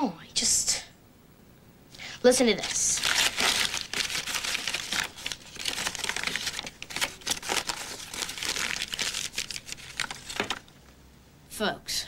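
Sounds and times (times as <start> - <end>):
paper crinkling: 2.5 - 10.8.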